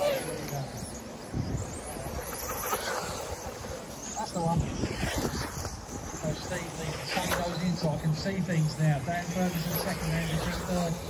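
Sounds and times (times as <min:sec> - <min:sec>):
toy car motors whining: 0:00.0 - 0:11.0
wind on microphone: 0:00.8 - 0:03.8, 0:04.4 - 0:07.3.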